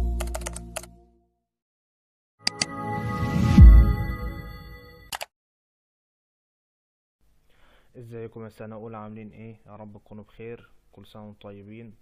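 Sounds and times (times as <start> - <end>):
computer keyboard typing: 0.2 - 0.9.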